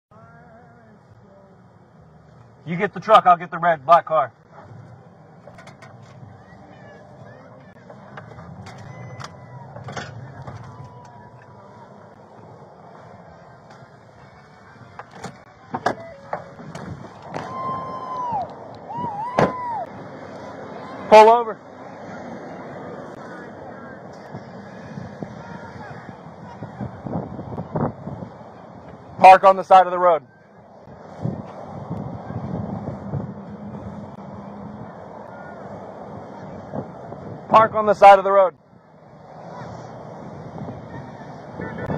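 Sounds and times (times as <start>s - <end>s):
car engine and road rumble: 0.1s - 41.9s
wind buffeting microphone: 16.4s - 20.8s, 22.4s - 29.2s, 30.6s - 37.7s.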